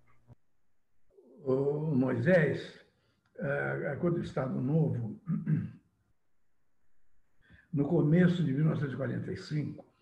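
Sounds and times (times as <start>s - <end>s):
man clearing throat: 5.1s - 5.8s.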